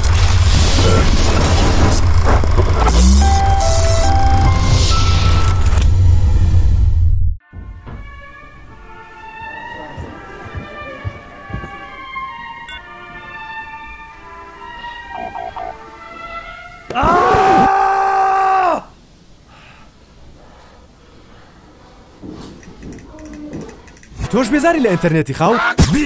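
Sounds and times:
held tone: 0:15.1 - 0:15.7
man's loud long cry: 0:16.9 - 0:19.0.

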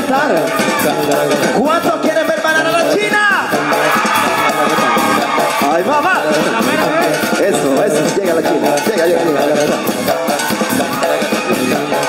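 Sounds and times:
live band music: 0:00.0 - 0:12.0
person singing: 0:00.0 - 0:12.0.

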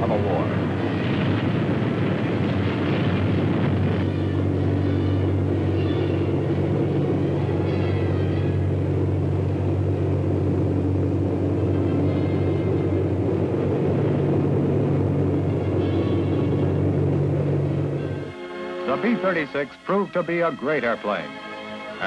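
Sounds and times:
bomber engines droning in flight: 0:00.0 - 0:22.0.

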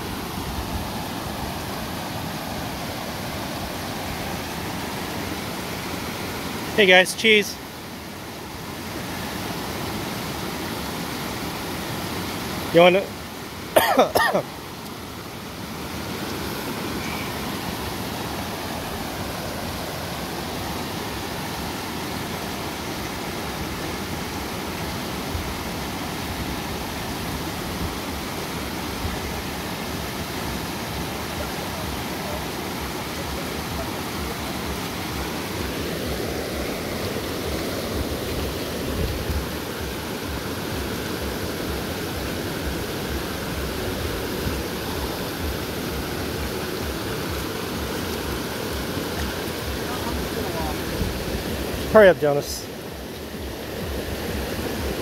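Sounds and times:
creek rushing over stones: 0:00.0 - 0:55.0.

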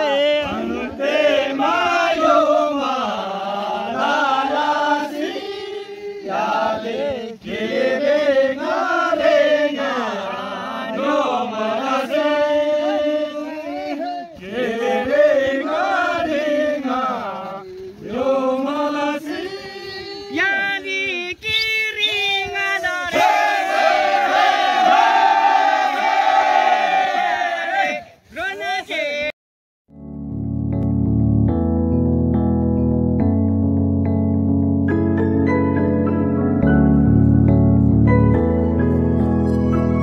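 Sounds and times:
men chanting: 0:00.0 - 0:21.4
men singing in unison: 0:00.0 - 0:21.5.

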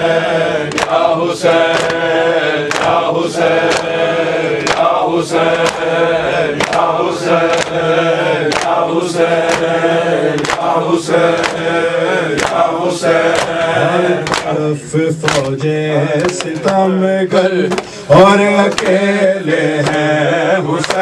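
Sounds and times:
men chanting in unison: 0:00.0 - 0:21.0
rhythmic chest-beating strikes: 0:00.0 - 0:21.0.

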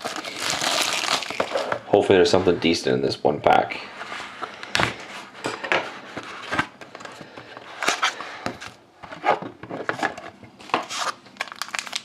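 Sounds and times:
plastic wrap crinkling: 0:00.0 - 0:01.8, 0:10.6 - 0:12.0.

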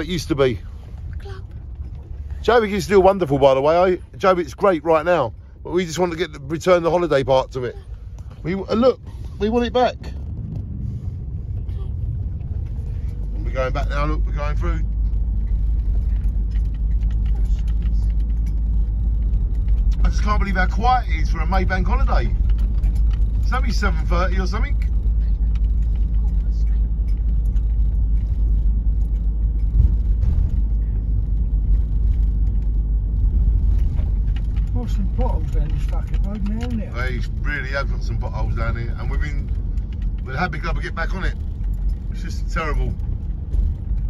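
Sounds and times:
car engine and tyres rumbling: 0:00.0 - 0:44.0.

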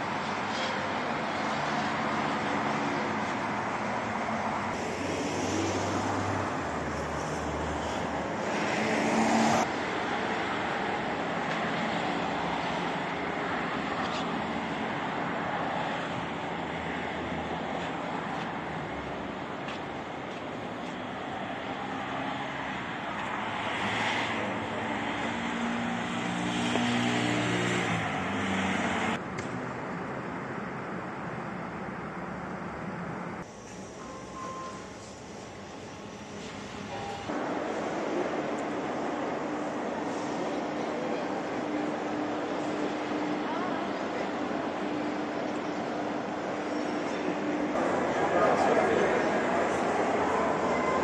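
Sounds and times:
traffic: 0:00.0 - 0:51.0.

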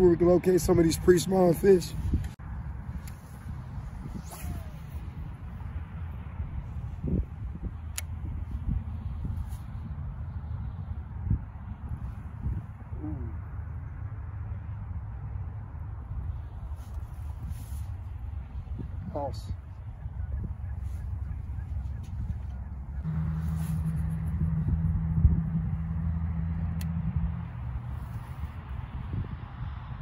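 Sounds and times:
wind rumbling on microphone: 0:00.0 - 0:30.0.

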